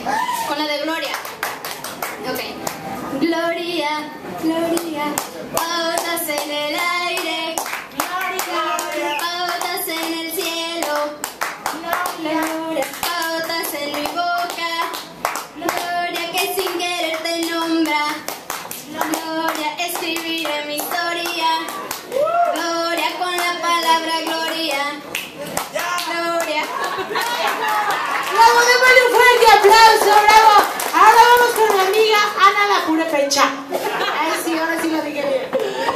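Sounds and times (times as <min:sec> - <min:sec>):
people clapping in time: 0:01.0 - 0:02.9, 0:04.8 - 0:32.2
woman singing unaccompanied: 0:03.1 - 0:25.1, 0:25.7 - 0:26.9.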